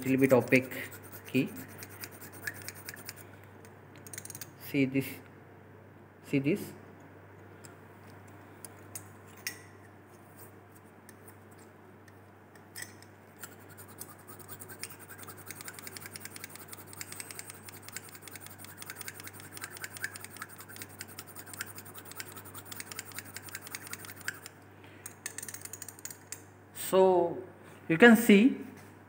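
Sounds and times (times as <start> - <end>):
glass rod scratching in test tube: 0.0 - 3.2, 13.4 - 24.5.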